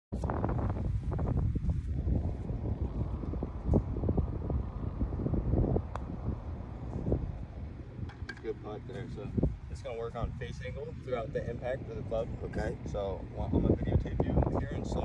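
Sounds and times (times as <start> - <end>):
wind buffeting microphone: 0.1 - 15.0.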